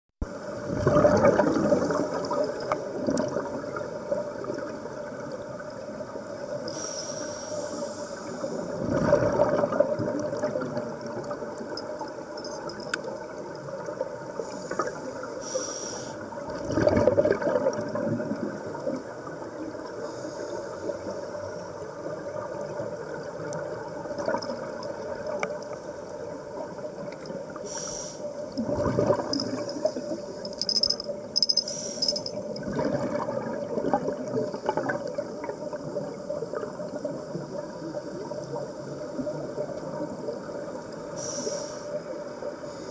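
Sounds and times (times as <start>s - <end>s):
exhaust bubbles rushing: 0.6s - 2.3s, 8.8s - 10.8s, 16.5s - 18.4s, 28.6s - 29.6s, 32.6s - 35.1s
regulator inhalation hiss: 6.6s - 8.7s, 14.4s - 16.4s, 27.6s - 28.4s, 31.6s - 32.4s, 41.1s - 42.0s.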